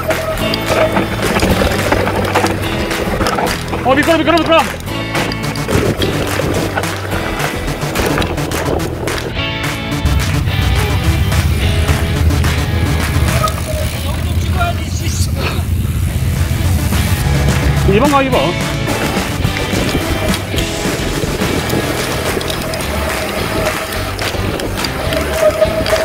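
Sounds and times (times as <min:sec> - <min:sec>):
heavy bass line: 0:00.0 - 0:26.0
music with steady beat: 0:04.6 - 0:13.4.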